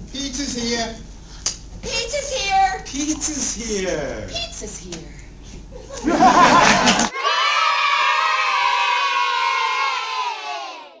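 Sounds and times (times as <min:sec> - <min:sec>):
crowd cheering: 0:06.1 - 0:11.0.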